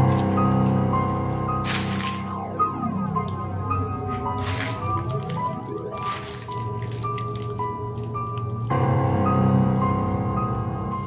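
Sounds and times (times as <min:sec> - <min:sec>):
horror film score: 0:00.0 - 0:11.0
wet squelching sound effects: 0:01.1 - 0:08.4.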